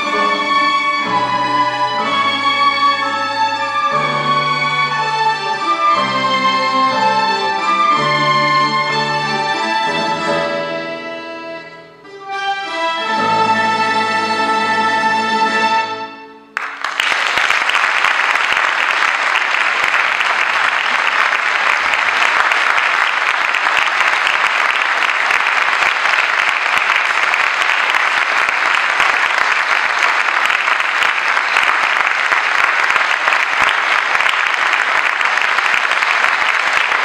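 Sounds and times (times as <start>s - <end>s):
audience applauding: 16.6s - 37.0s.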